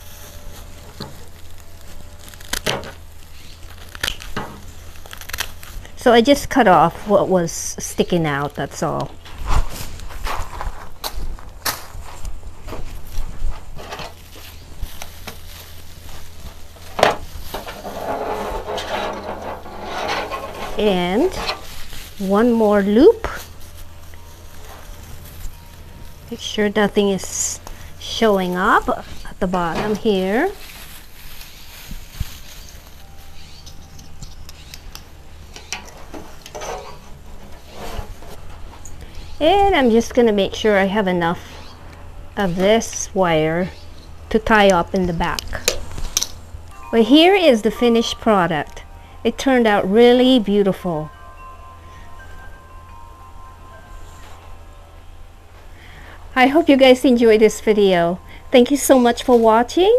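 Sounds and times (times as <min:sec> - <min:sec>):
dried flowers rustling and crackling: 0:00.0 - 0:59.9.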